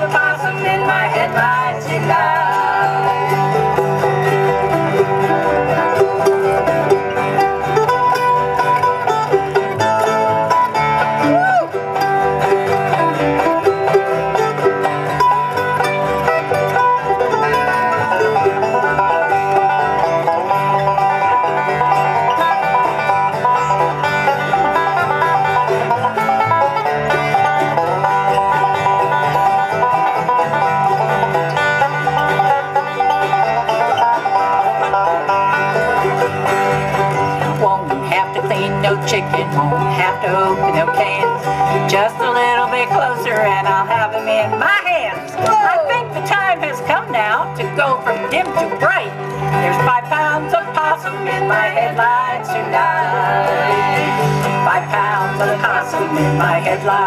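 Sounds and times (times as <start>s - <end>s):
acoustic guitar: 0.0s - 57.0s
banjo: 0.0s - 57.0s
mandolin: 0.0s - 57.0s
upright bass: 0.0s - 57.0s.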